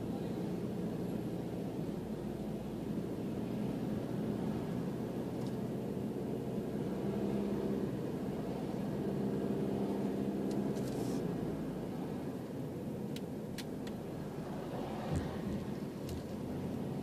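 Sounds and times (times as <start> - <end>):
car engine hum: 0.0 - 17.0
tyre and road noise: 0.0 - 17.0.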